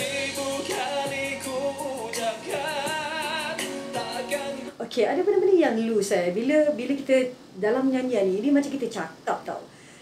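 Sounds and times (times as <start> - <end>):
man singing pop ballad: 0.0 - 4.8.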